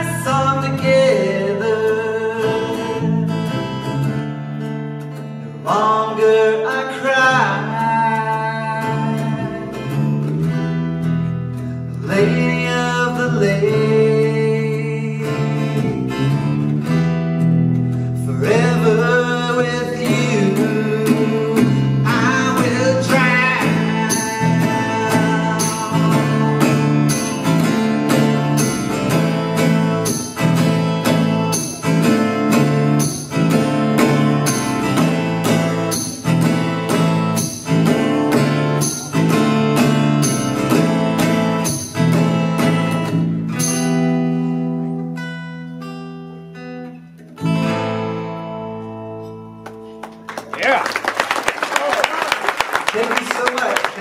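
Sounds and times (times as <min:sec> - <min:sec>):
strummed acoustic guitar: 0:00.0 - 0:50.6
live rock band playing: 0:15.3 - 0:46.5.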